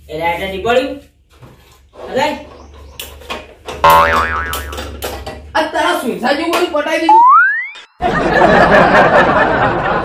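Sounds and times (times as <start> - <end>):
cartoon boing sound effect: 3.8 - 5.0, 7.1 - 8.0.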